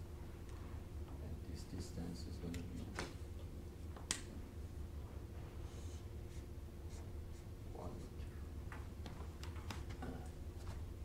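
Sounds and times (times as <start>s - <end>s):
marker writing on whiteboard: 5.7s - 8.3s.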